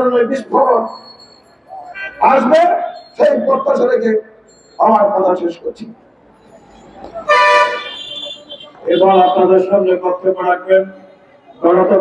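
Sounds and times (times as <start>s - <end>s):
low street noise: 0.0s - 12.0s
vehicle horn honking: 7.2s - 9.7s.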